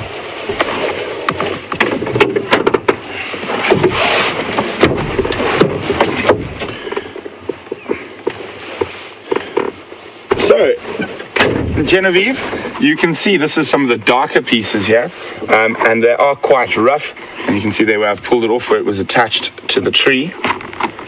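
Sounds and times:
bark rustling and scraping: 3.4s - 6.6s.

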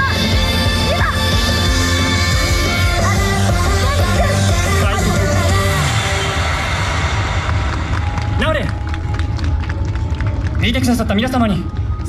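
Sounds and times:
dance music: 0.0s - 9.5s
steady low rumble: 0.6s - 12.0s.

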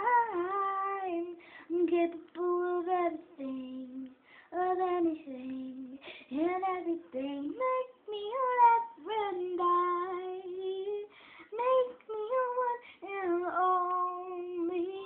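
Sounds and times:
young female voice singing: 0.0s - 15.0s.

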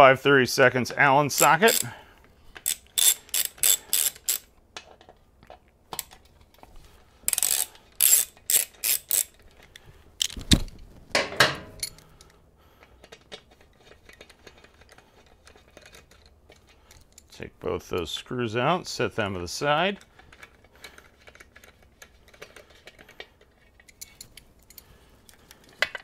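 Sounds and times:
ratchet pawl clicking: 1.3s - 1.9s, 2.6s - 4.5s, 7.3s - 9.4s.

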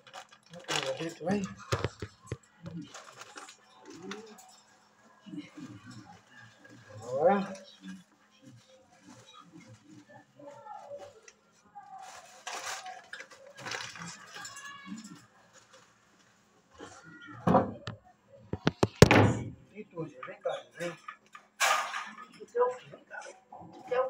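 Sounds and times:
plastic bag rustling: 0.0s - 4.9s, 12.0s - 16.5s
sharp knocks and clatter: 1.6s - 2.5s, 18.6s - 19.6s
soft voice-like sounds: 5.1s - 15.5s.

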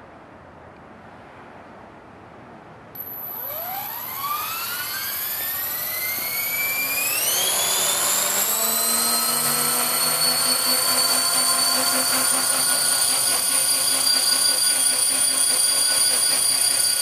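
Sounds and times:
rc helicopter motor whine: 3.0s - 17.0s.

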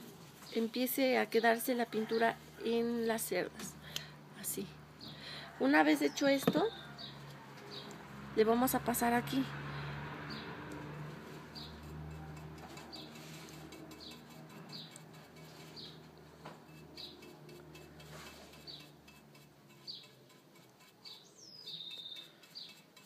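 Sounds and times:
small bird chirping: 12.6s - 16.0s, 16.7s - 23.0s.

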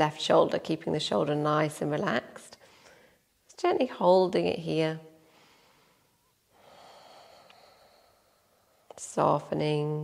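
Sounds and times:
soft breath through nose: 5.2s - 9.0s.

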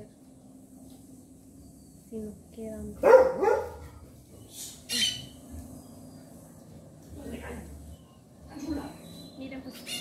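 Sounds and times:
dog barking: 3.0s - 4.0s.

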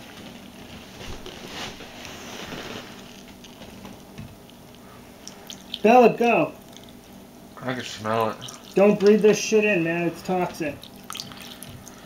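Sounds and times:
liquid trickling and dripping: 5.2s - 5.9s, 6.6s - 7.0s, 8.1s - 9.4s, 10.7s - 12.0s.

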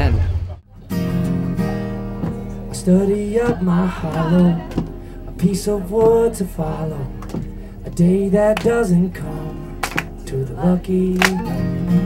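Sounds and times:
acoustic guitar strumming: 0.6s - 12.0s
man singing: 1.6s - 12.0s.

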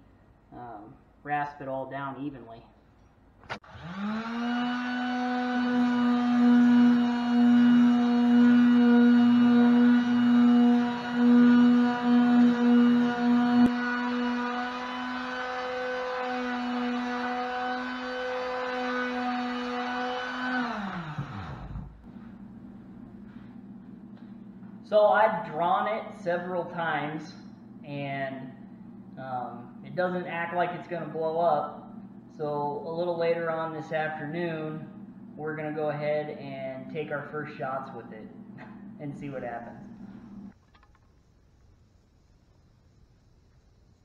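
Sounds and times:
electric sander running: 3.6s - 26.0s.

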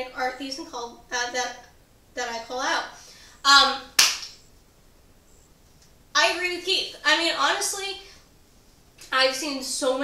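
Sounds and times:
hand clap: 4.0s - 4.4s.

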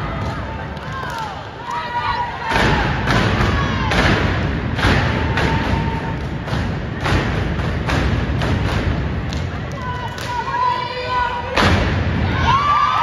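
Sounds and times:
crowd shouting: 9.8s - 13.0s.

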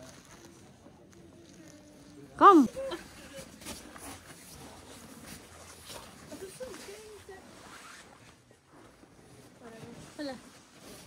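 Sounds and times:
faint background voices: 0.0s - 5.2s
winter clothing rustling: 0.0s - 11.0s.

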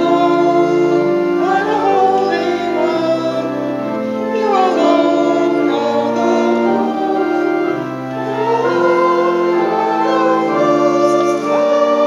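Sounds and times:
congregation singing: 0.0s - 12.0s
organ chords: 0.0s - 12.0s.

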